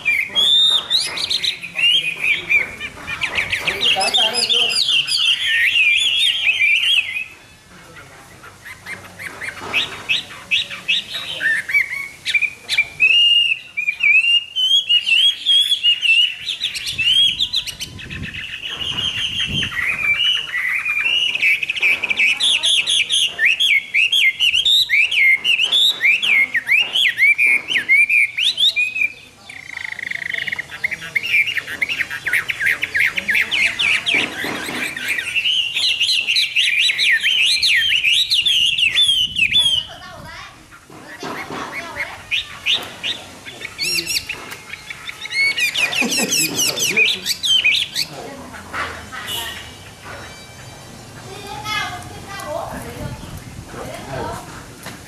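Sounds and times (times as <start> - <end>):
bird singing whistled phrases: 0.0 - 7.4, 8.8 - 40.0, 41.8 - 48.2.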